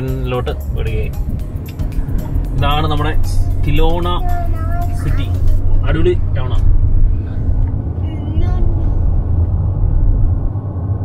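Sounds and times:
car road rumble inside cabin: 0.0 - 11.0.

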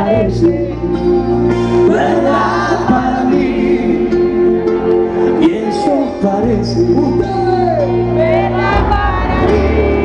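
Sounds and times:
crowd singing together: 0.0 - 10.0
live band music: 0.0 - 10.0.

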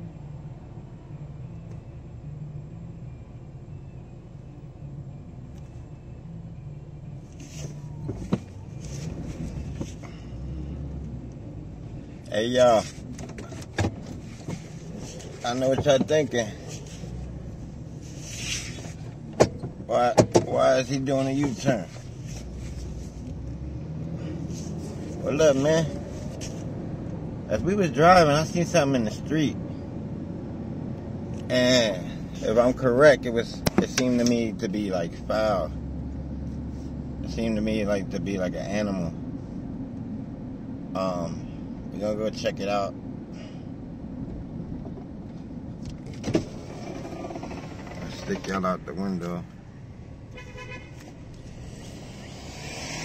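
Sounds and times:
car engine and road rumble: 0.0 - 53.0
power window motor whine: 46.4 - 48.4, 51.6 - 53.0.

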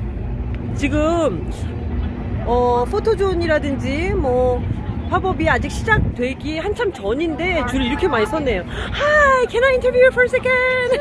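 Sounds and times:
low outdoor rumble: 0.0 - 11.0
person exclaiming: 7.6 - 9.3.

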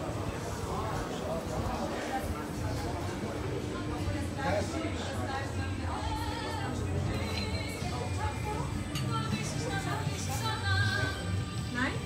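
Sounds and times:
people conversing: 1.4 - 12.0
background music: 4.0 - 12.0.

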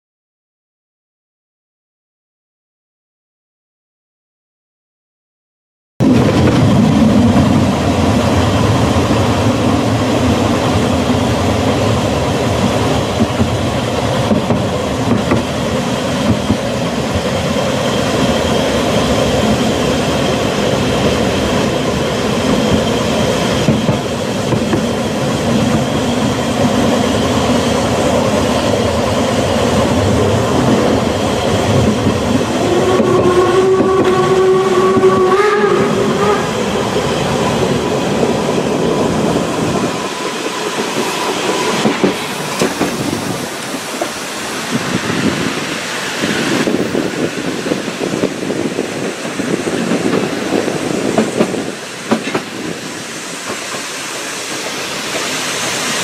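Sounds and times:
steam train rumble: 6.0 - 56.0
steam whistle: 32.6 - 36.6.

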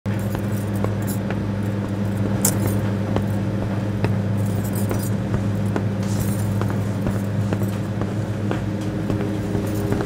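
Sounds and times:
ship engines droning: 0.1 - 10.0
metallic jingle: 0.2 - 3.4, 4.4 - 7.9, 9.6 - 10.0.

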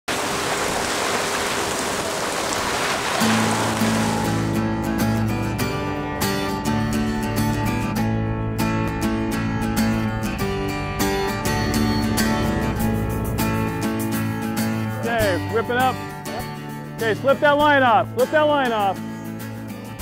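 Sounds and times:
rushing water along hull: 0.0 - 4.9
strummed acoustic guitar music: 3.2 - 20.0.

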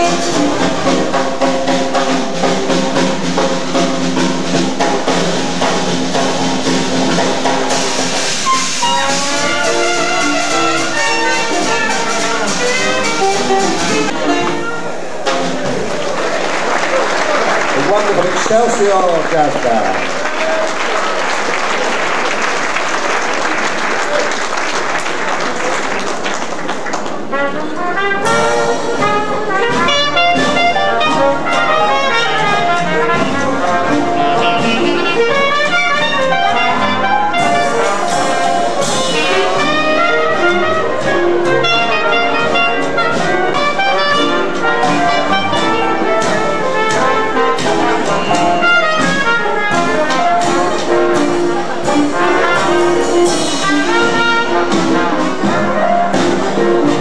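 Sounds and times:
jazz band playing: 0.0 - 57.0
audience applause: 15.5 - 27.8.

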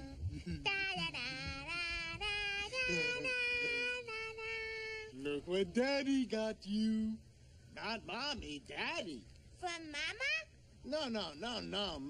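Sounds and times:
high-pitched voice singing wordless notes: 0.0 - 5.7.

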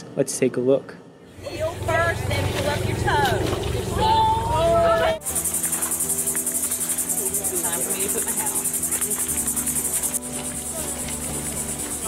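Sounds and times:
low music: 1.3 - 12.0
insect chirring: 5.2 - 12.0.

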